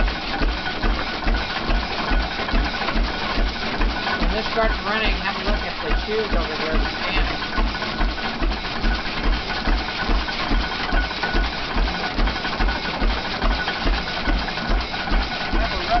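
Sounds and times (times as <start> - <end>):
stamp mill heavy thuds: 0.0 - 16.0.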